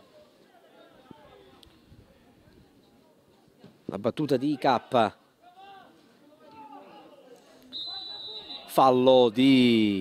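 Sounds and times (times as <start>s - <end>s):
referee's whistle blast: 7.7s - 8.8s.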